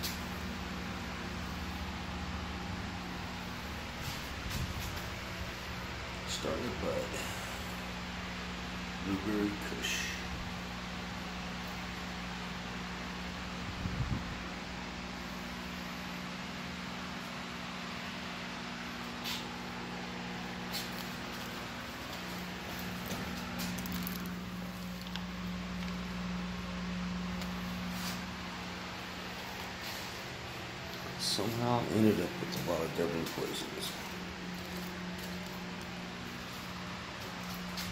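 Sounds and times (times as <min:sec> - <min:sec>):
fans humming and hissing: 0:00.0 - 0:37.9.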